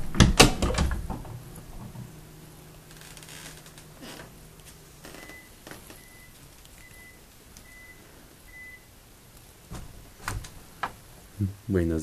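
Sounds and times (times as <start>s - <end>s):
soft thump: 9.7s - 10.5s.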